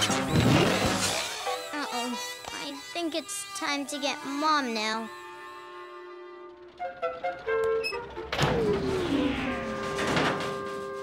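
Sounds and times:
cartoon underscore music: 0.0 - 11.0
thunk with descending slide: 8.1 - 10.7.

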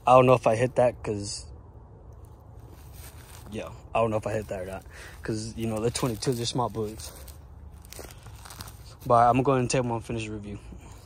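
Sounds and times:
faint crackles: 2.1 - 9.9
footsteps crunching on dry grass: 2.2 - 9.9.

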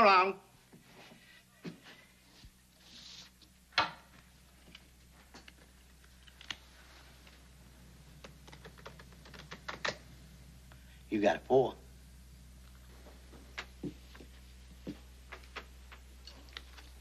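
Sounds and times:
playing cards clicking: 8.2 - 10.0.

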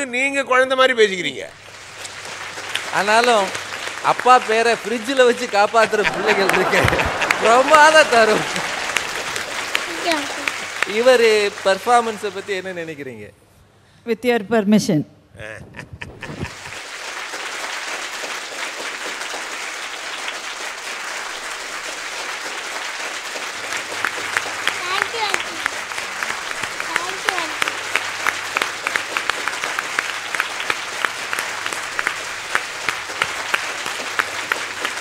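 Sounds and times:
studio audience applauding: 1.5 - 13.1, 16.1 - 35.0.

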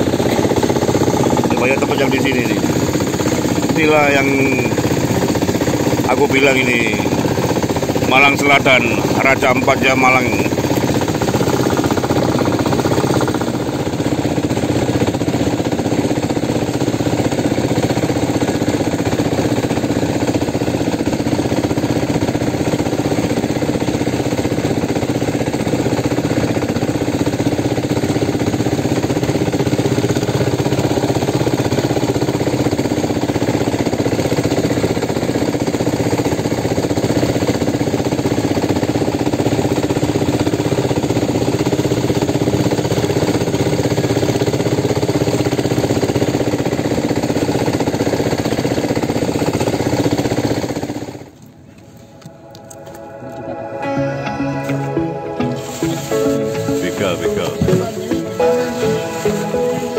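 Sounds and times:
boat engine running: 0.0 - 59.9.

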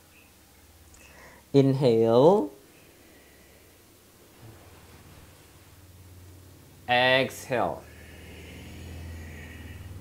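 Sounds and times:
steady low hum: 0.0 - 10.0
man exhaling slowly: 7.8 - 10.0.

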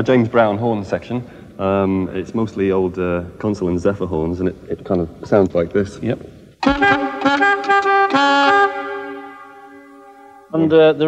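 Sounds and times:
car horns blasting together: 6.6 - 10.4.

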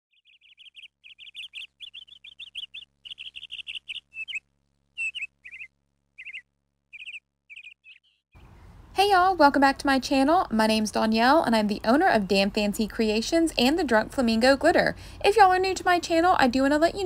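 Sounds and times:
bird chirping: 0.1 - 8.8.

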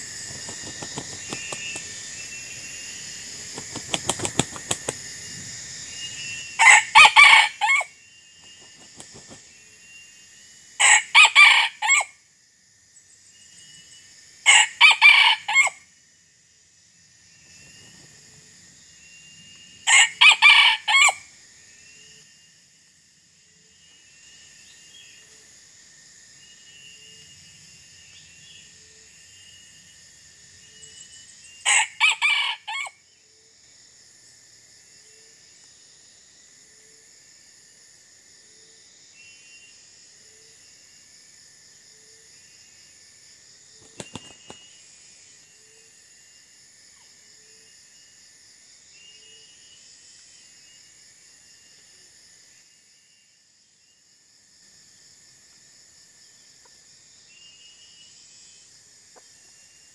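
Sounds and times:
high insect drone: 0.0 - 59.9
rooster crowing: 6.6 - 7.9, 10.8 - 12.1, 14.5 - 15.8, 19.9 - 21.2, 31.6 - 33.0.

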